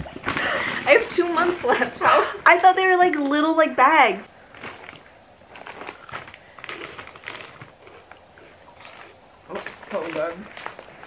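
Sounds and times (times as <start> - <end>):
plastic bag crinkling: 0.0 - 2.0, 4.3 - 11.0.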